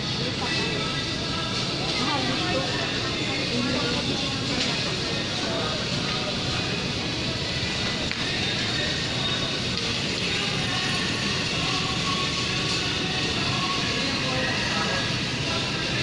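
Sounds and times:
faint background music: 0.0s - 16.0s
murmur of voices: 0.0s - 16.0s.

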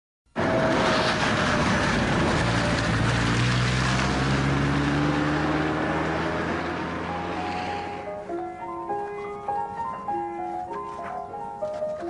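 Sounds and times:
loud steady rushing noise: 0.4s - 8.1s.

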